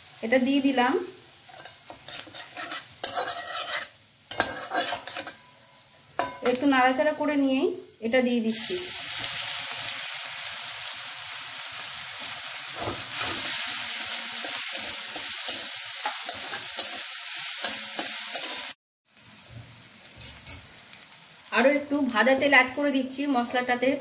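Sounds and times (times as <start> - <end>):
paste sizzling in hot oil: 0.0 - 5.6, 8.5 - 23.9
metal spatula scraping a wok: 1.4 - 5.6, 12.8 - 18.8, 20.2 - 20.7.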